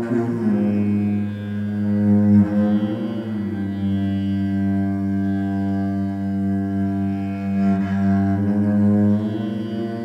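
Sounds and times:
cello bowed low notes: 0.0s - 10.0s.

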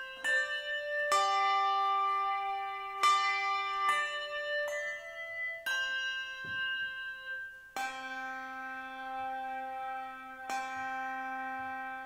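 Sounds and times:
handbells ringing a slow melody: 0.0s - 12.0s.

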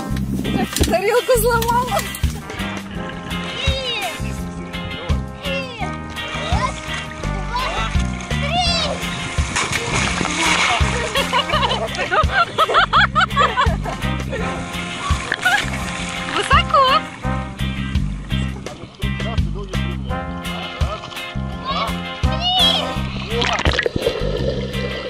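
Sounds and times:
background music with beat: 0.0s - 25.0s
water splashing: 5.4s - 12.8s, 14.3s - 19.2s, 22.6s - 25.0s.

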